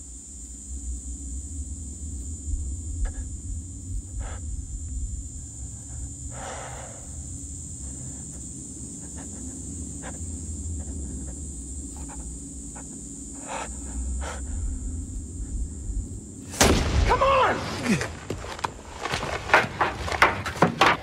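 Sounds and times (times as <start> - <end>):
deep low rumble: 1.0 - 6.4.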